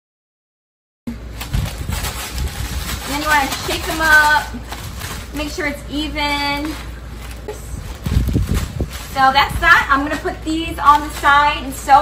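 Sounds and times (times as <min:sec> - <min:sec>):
plastic bag rustling and crinkling: 0:01.2 - 0:12.0.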